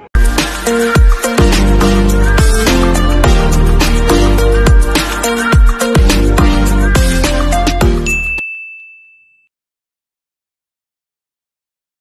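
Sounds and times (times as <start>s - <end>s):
electronic background music: 0.0s - 8.3s
high chime: 7.9s - 9.5s.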